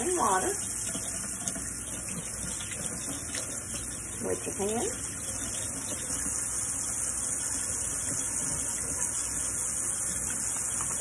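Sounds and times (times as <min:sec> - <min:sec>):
tap water running into a sink: 0:00.0 - 0:11.0.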